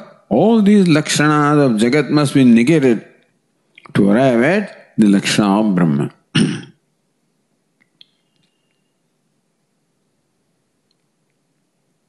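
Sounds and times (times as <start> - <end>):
man speaking: 0.0 - 3.1, 3.8 - 6.4
faint room hum: 0.0 - 12.0
man clearing his throat: 6.3 - 6.8.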